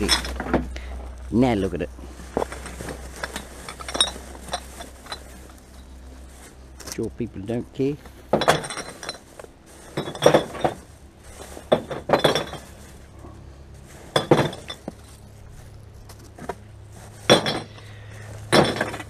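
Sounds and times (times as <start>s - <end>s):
glass bottles clinking: 0.0s - 0.8s, 2.3s - 6.0s, 8.3s - 13.0s, 14.1s - 15.1s, 17.2s - 19.0s.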